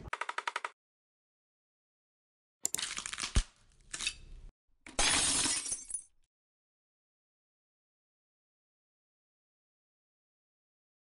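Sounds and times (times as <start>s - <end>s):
glass shattering: 4.9s - 6.2s.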